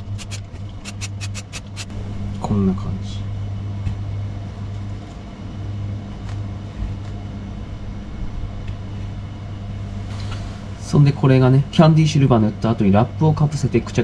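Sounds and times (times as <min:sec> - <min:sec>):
low electrical hum: 0:00.0 - 0:14.0.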